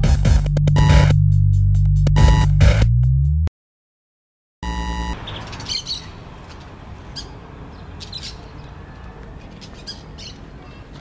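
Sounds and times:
birds chirping: 4.6s - 11.0s.

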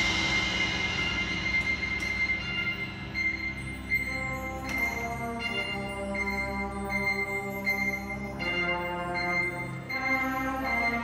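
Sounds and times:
sustained high notes: 0.0s - 11.0s.

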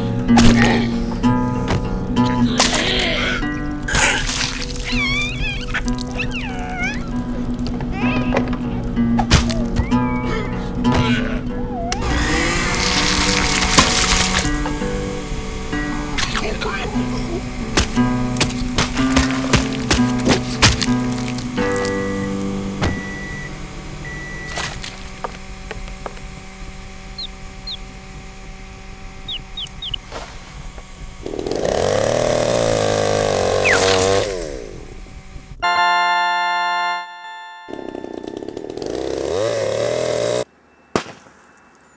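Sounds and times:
music: 0.0s - 24.8s
chainsaw engine revving: 11.9s - 35.5s, 37.7s - 40.5s.

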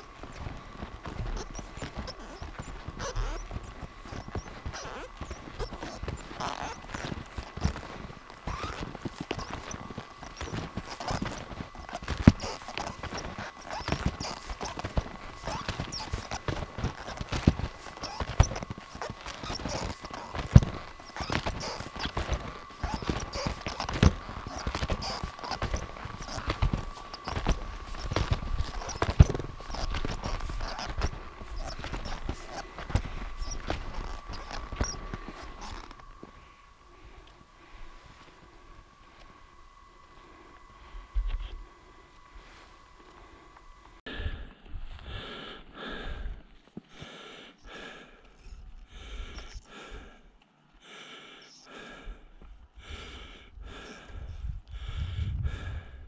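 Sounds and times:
skis sliding and crunching in snow: 0.0s - 38.4s
faint thin whine: 0.0s - 45.0s.

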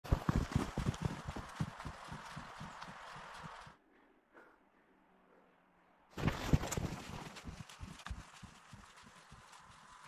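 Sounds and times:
footsteps crunching in snow: 6.2s - 10.0s.

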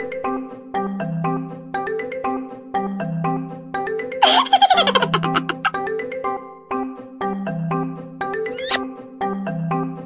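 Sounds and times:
laugh sound effect: 4.2s - 5.8s.

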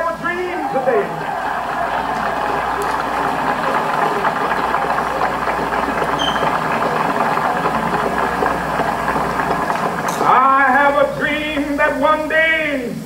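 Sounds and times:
crowd applause and cheering on tv: 0.0s - 12.3s.

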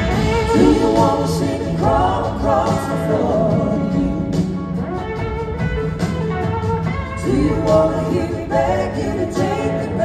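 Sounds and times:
people singing: 0.0s - 4.9s, 7.2s - 10.0s
live rock band playing: 0.0s - 10.0s.

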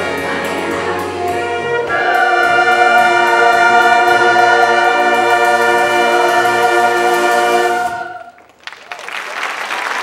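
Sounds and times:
choir singing: 0.0s - 8.4s
concert band: 0.0s - 10.0s.

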